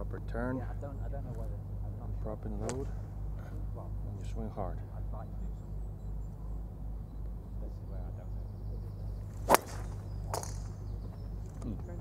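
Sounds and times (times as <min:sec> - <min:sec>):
golf club striking ball: 0:02.6 - 0:03.0, 0:09.3 - 0:11.0.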